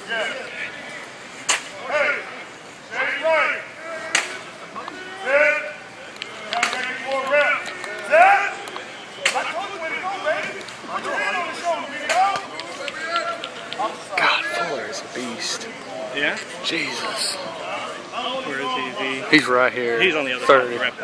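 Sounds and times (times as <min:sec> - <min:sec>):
men shouting: 0:01.7 - 0:15.7, 0:16.7 - 0:19.3.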